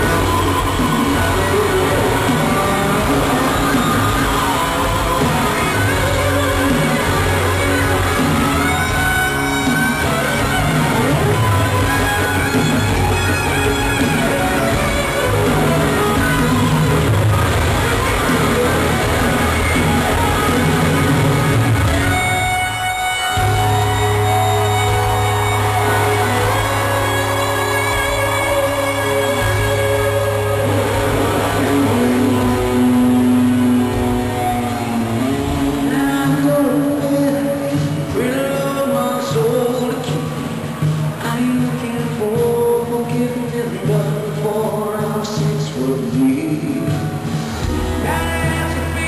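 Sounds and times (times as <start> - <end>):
live rock band playing: 0.0 - 49.0.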